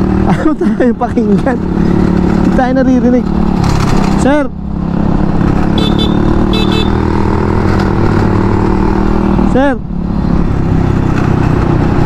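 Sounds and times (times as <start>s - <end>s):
motor scooter engines droning: 0.0s - 12.0s
road noise: 0.0s - 12.0s.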